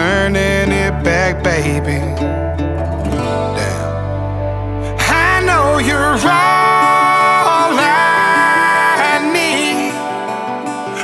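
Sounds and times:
country-rock song with singing: 0:00.0 - 0:11.0.

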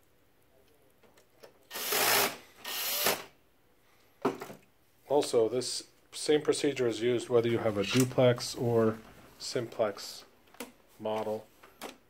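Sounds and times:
cordless drill driving screws: 0:01.7 - 0:03.3.

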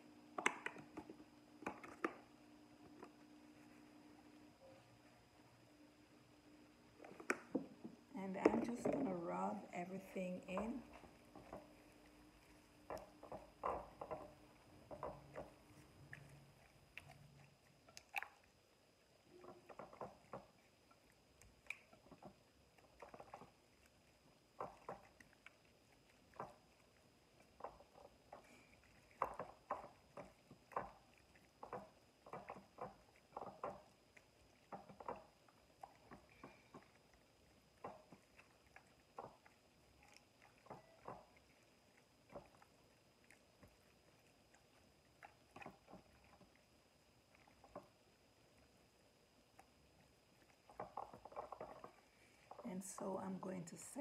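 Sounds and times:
wet squishing of hands rubbing fish: 0:06.9 - 0:54.0.

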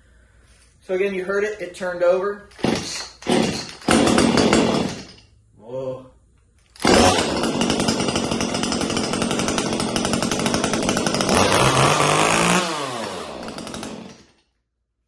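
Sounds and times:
chainsaw engine running: 0:02.6 - 0:05.1, 0:06.8 - 0:14.3.

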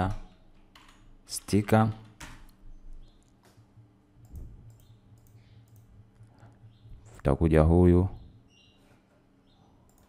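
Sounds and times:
keyboard clicks: 0:04.2 - 0:06.3
computer mouse clicks: 0:04.2 - 0:06.4.

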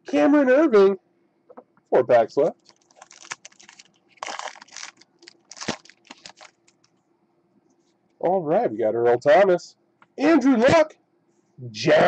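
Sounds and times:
foil pack crinkling: 0:02.6 - 0:06.9.

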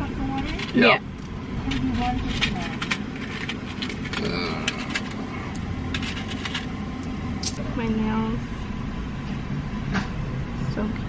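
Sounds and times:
car engine idling: 0:00.0 - 0:08.3
small items clicking and jingling: 0:00.3 - 0:06.7
faint voice: 0:04.2 - 0:05.0.

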